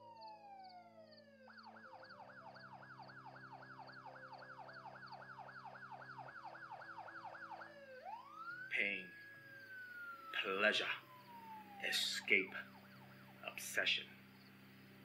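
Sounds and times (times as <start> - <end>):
emergency vehicle siren: 0.0 - 15.0.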